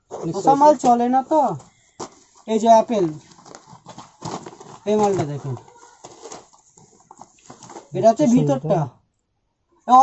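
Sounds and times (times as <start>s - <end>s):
cloth rustling: 0.3s - 8.4s.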